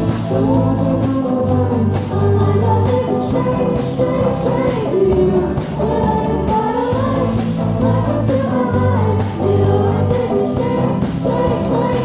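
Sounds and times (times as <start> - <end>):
bass line: 0.0 - 12.0
voices singing together: 0.0 - 12.0.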